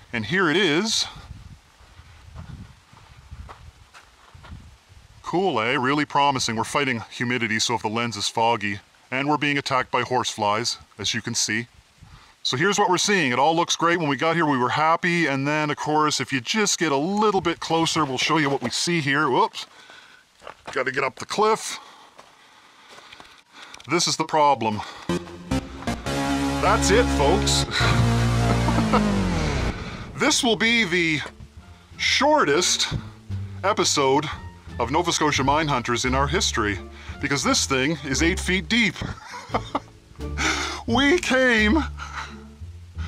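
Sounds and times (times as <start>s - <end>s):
person speaking: 0.0s - 1.2s, 12.5s - 19.7s, 20.7s - 21.9s, 23.8s - 39.8s, 40.4s - 42.4s
footsteps on loose rock: 17.7s - 21.4s, 22.1s - 23.9s.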